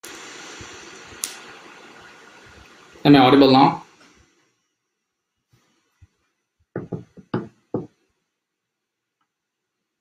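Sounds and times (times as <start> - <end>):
background room hiss: 0.0 - 10.0.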